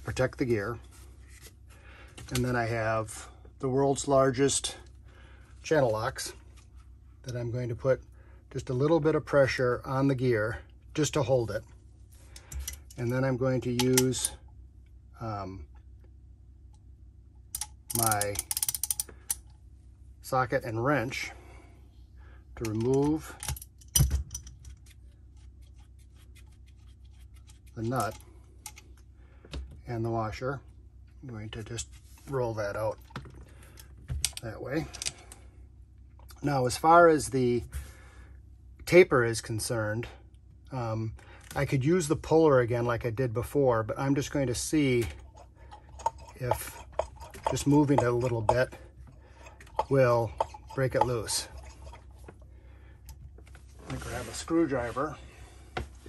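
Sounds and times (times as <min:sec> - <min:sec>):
low steady hum: 0:00.0 - 0:56.0
ratchet wrench clicking: 0:17.6 - 0:19.4.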